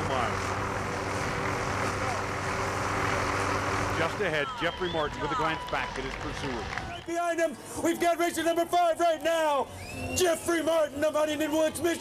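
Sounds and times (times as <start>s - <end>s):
engine drone with hiss: 0.0s - 4.6s.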